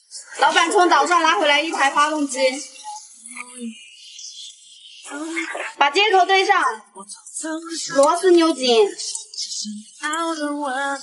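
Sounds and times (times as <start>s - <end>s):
woman singing: 6.2s - 11.0s.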